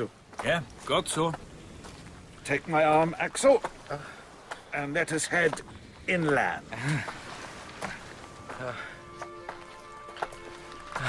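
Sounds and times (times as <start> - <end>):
footsteps: 0.2 - 11.0
music of sustained notes: 7.7 - 11.0.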